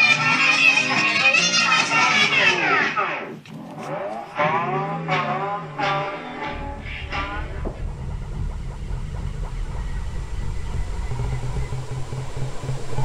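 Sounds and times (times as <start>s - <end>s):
harsh noise wall: 0.0s - 13.0s
low pulsing rumble: 4.8s - 13.0s.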